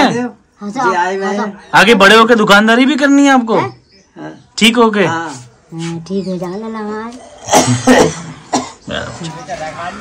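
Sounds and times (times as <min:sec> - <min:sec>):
person coughing: 0:07.4 - 0:08.8.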